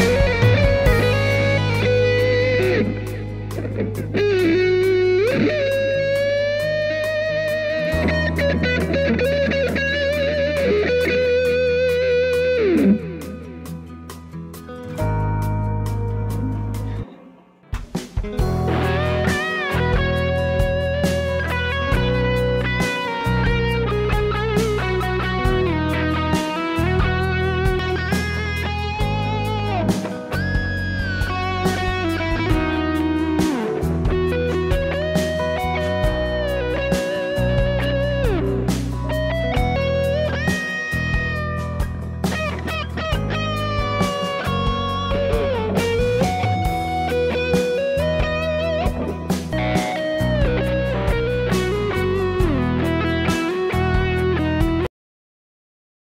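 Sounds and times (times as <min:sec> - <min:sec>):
backing track: 0:00.0 - 0:54.9
electric guitar lead: 0:00.0 - 0:54.9.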